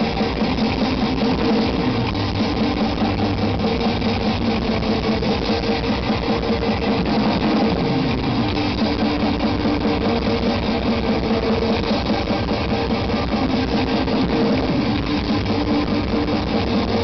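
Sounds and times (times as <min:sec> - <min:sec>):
bass guitar: 0:00.0 - 0:17.0
distorted electric guitars: 0:00.0 - 0:17.0
drums: 0:00.0 - 0:17.0.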